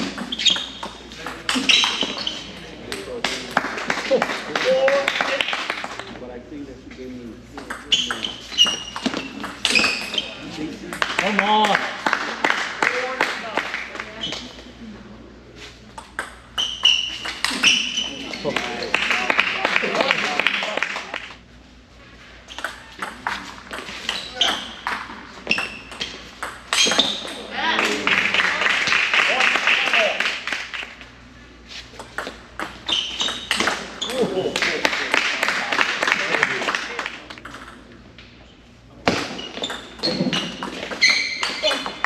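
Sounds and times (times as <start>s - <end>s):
ping pong ball hitting paddles: 0.0s - 6.2s, 7.6s - 14.6s, 15.9s - 21.3s, 22.5s - 31.1s, 32.0s - 38.0s, 39.0s - 42.0s
high-pitched squeak: 7.9s - 10.4s, 39.4s - 41.9s.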